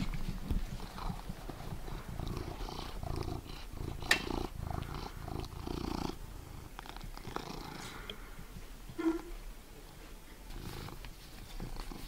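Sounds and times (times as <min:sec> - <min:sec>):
cat purring: 0:00.0 - 0:09.3, 0:10.5 - 0:12.0.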